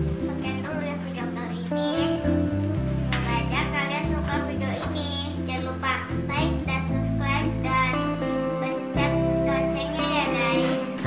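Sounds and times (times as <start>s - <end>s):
stepping bass line: 0.0s - 11.0s
child singing children's song: 0.2s - 2.4s, 3.1s - 11.0s.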